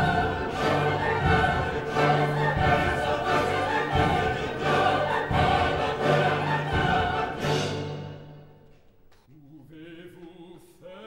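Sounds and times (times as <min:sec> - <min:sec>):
choir singing: 0:00.0 - 0:08.6, 0:09.4 - 0:11.0
low orchestral notes: 0:00.0 - 0:09.0.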